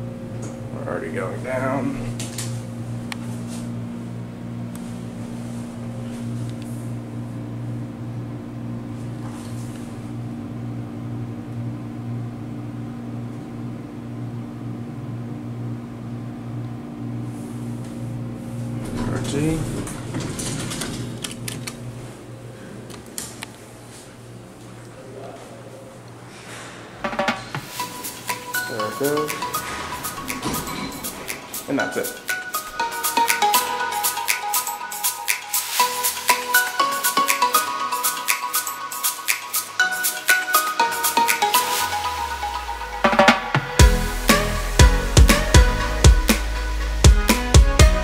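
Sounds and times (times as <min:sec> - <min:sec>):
elevator hum: 0:00.0 - 0:48.0
elevator door click: 0:18.8 - 0:22.0, 0:28.8 - 0:32.8.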